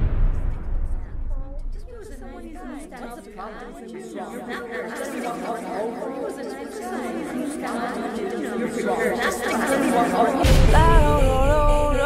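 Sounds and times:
many voices chattering: 0.9s - 12.0s.

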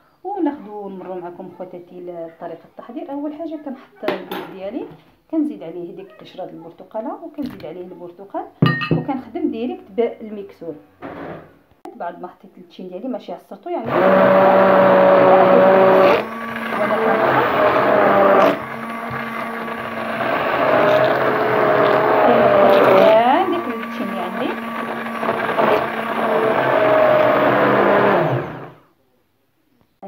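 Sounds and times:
stick blender running in a bowl: 13.8s - 28.8s.

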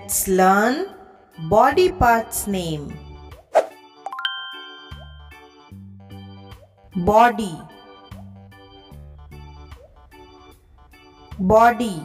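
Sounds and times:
light background music: 0.0s - 12.0s
rising chime notes: 4.1s - 5.5s.

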